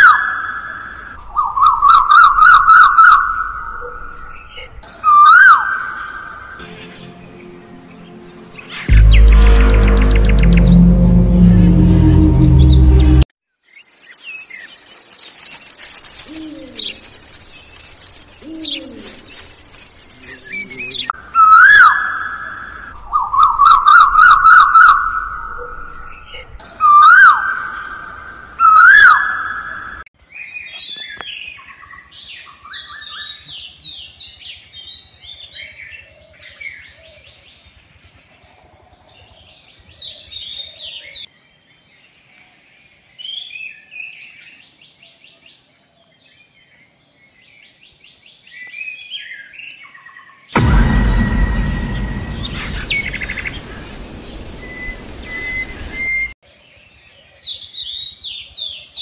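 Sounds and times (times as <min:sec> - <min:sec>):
birds chirping: 0:51.2 - 0:56.3.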